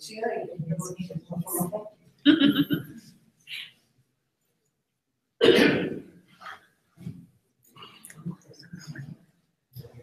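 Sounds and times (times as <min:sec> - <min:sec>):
person coughing loudly: 0:05.4 - 0:06.0.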